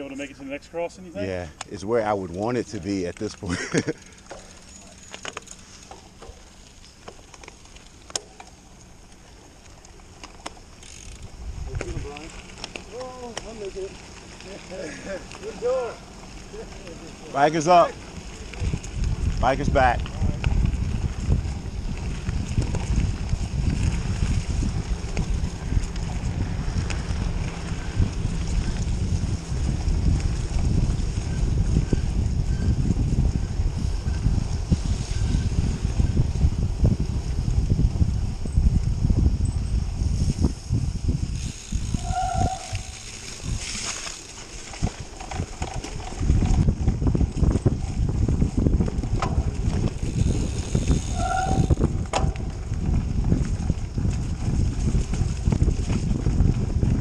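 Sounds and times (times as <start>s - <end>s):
wind buffeting microphone: 10.6s - 57.0s.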